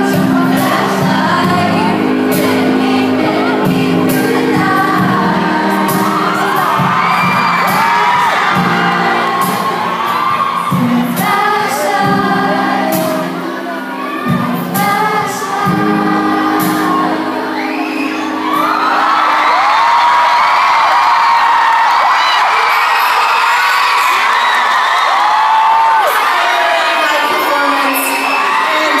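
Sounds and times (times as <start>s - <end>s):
woman singing pop song: 0.0s - 18.3s
crowd screaming and cheering: 0.0s - 29.0s.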